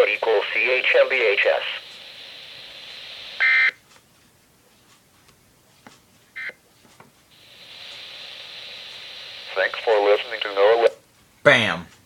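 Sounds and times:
radio speaker hiss: 0.0 - 3.7, 7.3 - 11.0.

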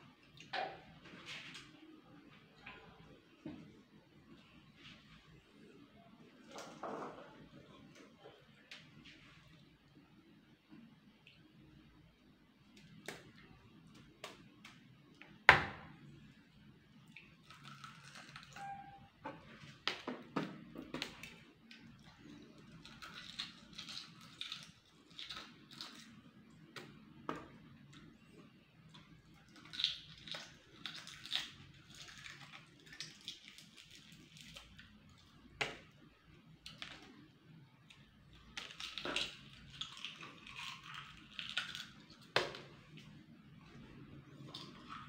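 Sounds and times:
person chewing: 38.6 - 42.1.

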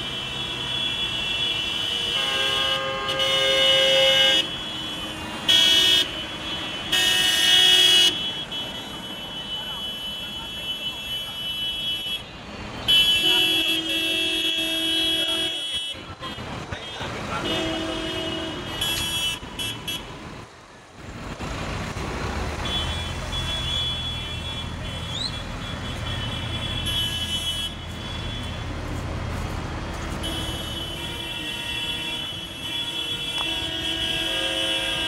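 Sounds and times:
tractor horns blaring: 0.0 - 20.2, 22.5 - 35.0
diesel engines rumbling: 0.0 - 35.0.

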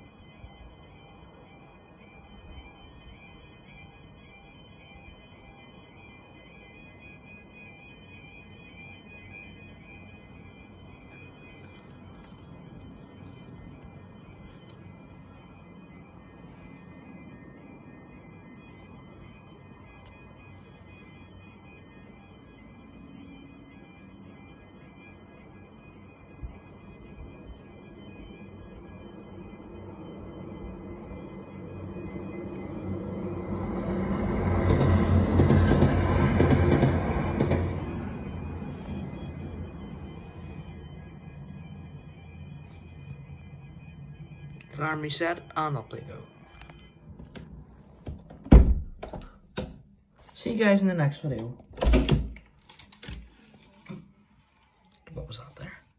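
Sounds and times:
diesel train passing: 0.0 - 48.0
level crossing alarm: 0.0 - 55.9.

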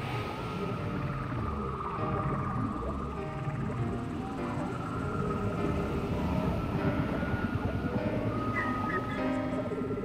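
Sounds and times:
ambient relaxation music: 0.0 - 10.0
whale calls: 6.4 - 9.6.

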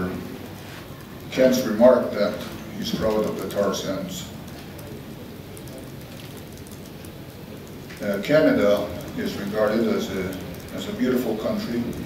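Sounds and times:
room tone hiss: 0.0 - 12.0
faint clicks: 4.4 - 12.0.

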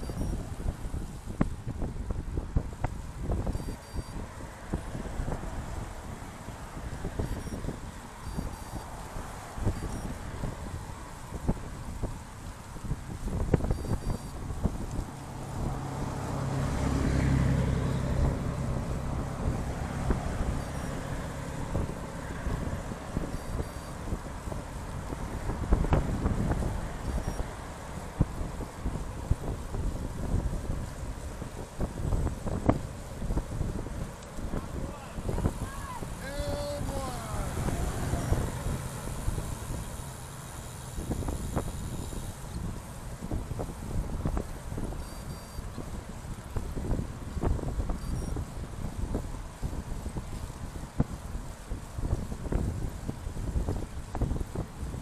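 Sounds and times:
motor vehicle passing: 0.0 - 51.0
wind buffeting microphone: 0.0 - 55.0.

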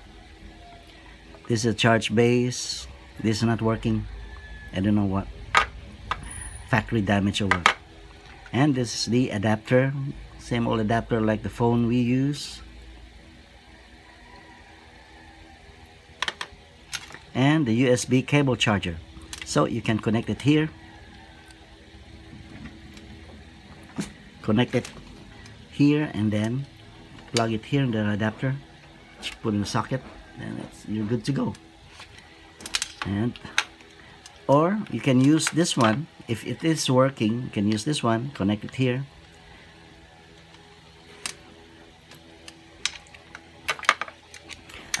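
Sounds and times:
low background hum: 0.0 - 45.0
cable handling noise: 16.2 - 17.3, 22.3 - 25.6, 31.5 - 36.1, 40.3 - 45.0.

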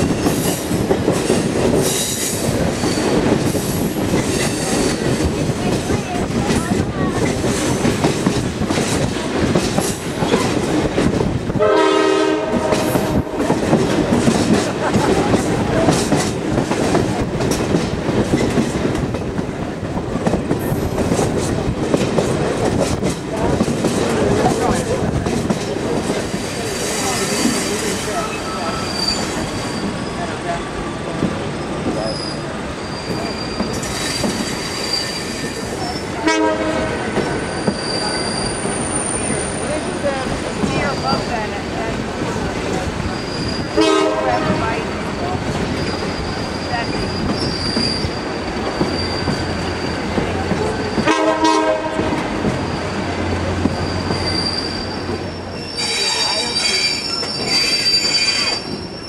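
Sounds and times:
train wheels rumbling and clattering: 0.0 - 59.0
train horn blast: 11.6 - 13.6, 36.2 - 37.2, 43.8 - 44.8, 51.0 - 52.3
high-pitched wheel squeal: 27.0 - 30.4, 32.0 - 36.1, 37.4 - 39.7, 45.2 - 50.0, 53.7 - 59.0.

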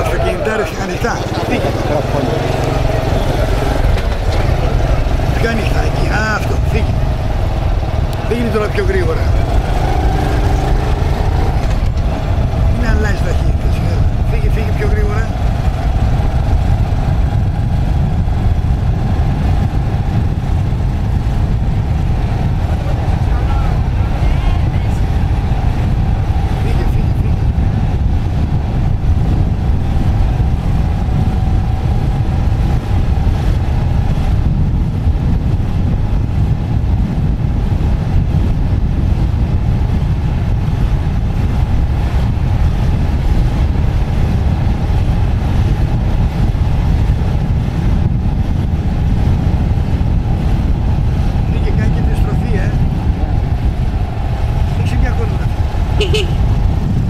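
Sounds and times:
vehicle low rumble: 0.0 - 57.0
wind noise on microphone: 0.0 - 57.0.

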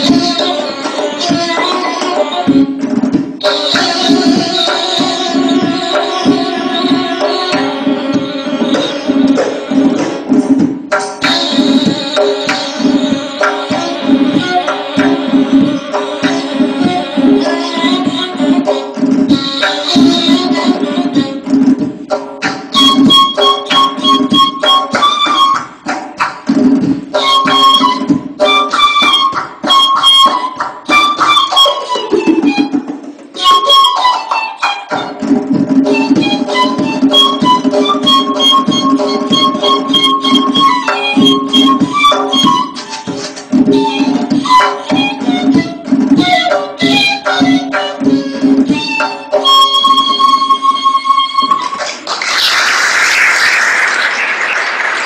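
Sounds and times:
reed flute melody: 22.7 - 26.0, 27.1 - 52.6
applause: 51.8 - 55.0.

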